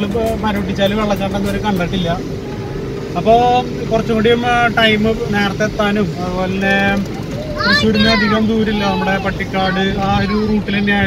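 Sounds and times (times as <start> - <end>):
engine and road hum: 0.0 - 11.0
man's voice: 3.2 - 11.0.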